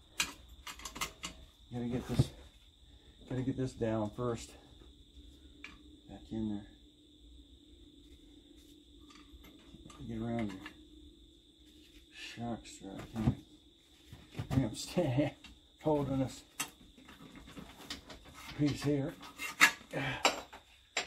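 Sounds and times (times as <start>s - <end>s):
metal clinks and knocks: 0.0s - 1.5s
man grunting and muttering: 19.9s - 20.4s.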